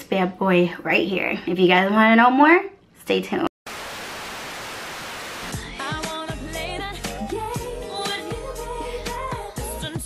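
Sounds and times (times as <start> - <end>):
tv static hiss: 3.7 - 5.6
music with a beat: 5.5 - 10.0.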